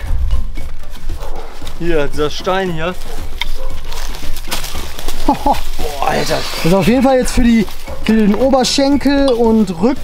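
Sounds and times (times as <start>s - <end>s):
man's voice: 5.8s - 10.0s.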